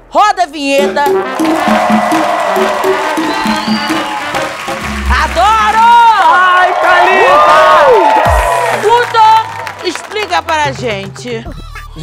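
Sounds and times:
tv music jingle: 0.7s - 6.2s.

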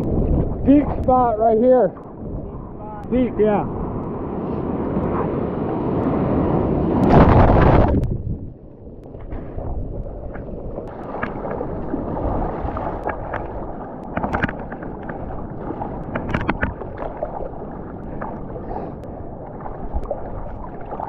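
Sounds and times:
whitewater rushing and splashing: 10.8s - 21.0s.

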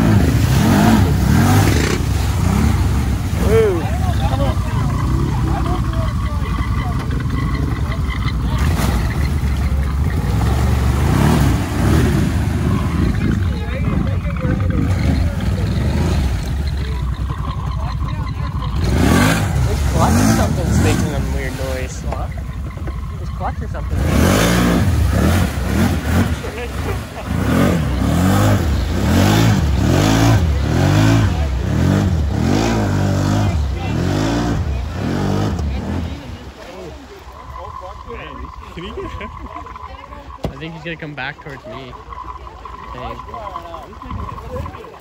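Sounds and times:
atv engine revving: 0.0s - 45.0s
tyres churning water: 0.0s - 45.0s.

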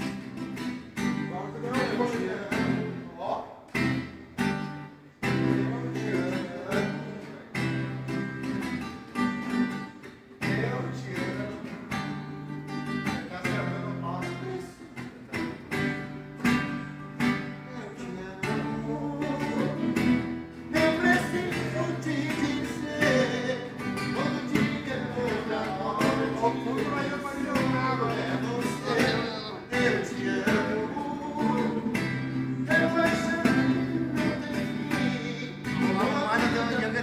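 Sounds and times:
acoustic guitar playing: 0.0s - 37.0s.

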